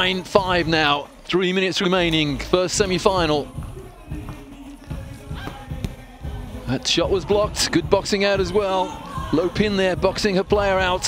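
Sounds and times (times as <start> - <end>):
quiet arena music: 0.0 - 11.0
basketball bouncing on court: 2.8 - 6.5
players' feet on court: 2.8 - 6.5.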